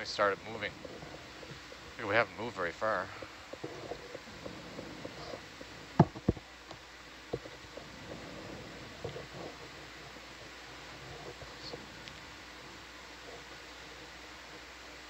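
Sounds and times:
faint ticks: 0.0 - 15.0
low background hiss: 0.0 - 15.0.

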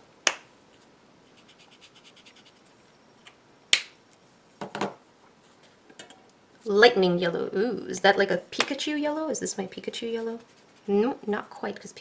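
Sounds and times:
marker scratching on paper: 1.3 - 2.6.

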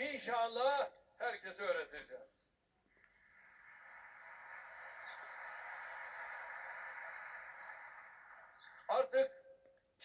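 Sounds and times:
audience applause through tv speaker: 3.3 - 9.1.

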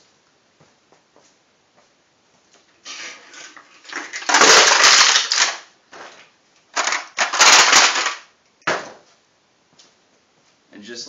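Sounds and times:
beer cans crushing: 2.9 - 9.0.

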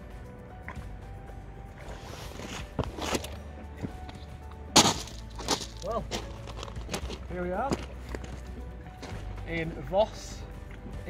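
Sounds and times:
faint background music: 0.0 - 11.0
footsteps crunching on pebbles: 1.8 - 9.9.

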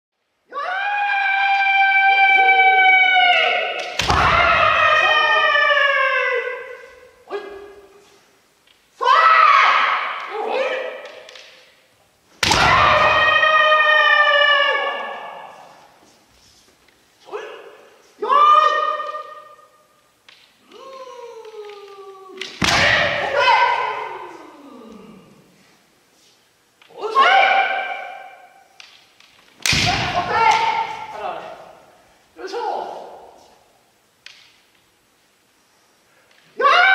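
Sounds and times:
person shouting: 0.5 - 7.9, 17.3 - 19.6, 20.6 - 25.4, 26.9 - 28.3, 29.8 - 31.8, 36.6 - 36.9
bamboo sword strike crack: 12.4 - 12.9, 22.4 - 23.2, 29.6 - 30.8.

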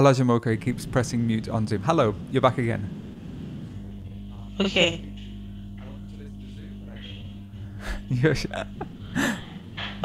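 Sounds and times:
low electrical hum: 0.0 - 10.0
faint indistinct speech: 4.1 - 8.0.

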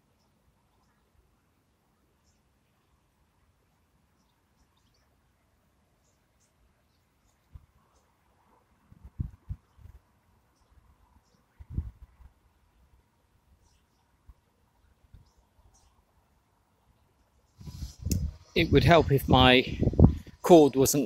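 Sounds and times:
distant birds chirping: 0.0 - 21.0.

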